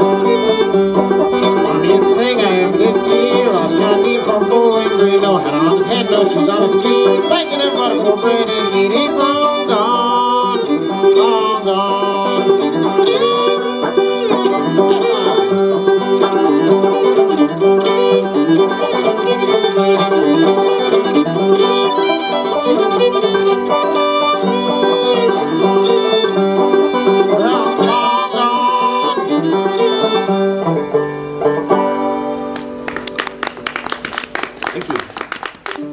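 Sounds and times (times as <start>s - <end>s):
banjo picking: 0.0s - 34.9s, 35.6s - 35.9s
fiddle melody: 0.0s - 35.9s.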